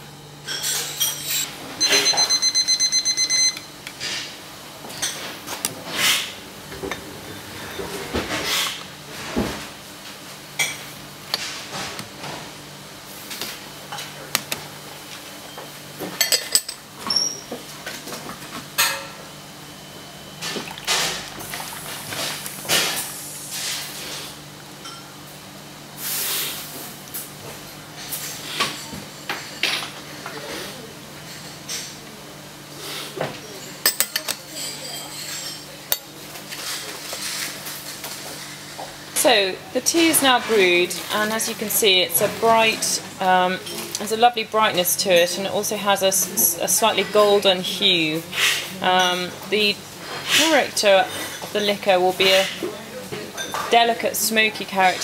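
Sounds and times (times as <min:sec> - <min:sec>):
kitchen timer beeping rapidly: 0:01.8 - 0:03.7.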